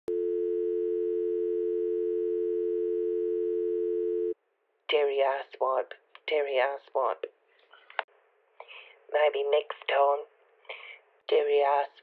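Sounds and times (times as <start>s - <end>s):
telephone dial tone: 0.1s - 4.4s.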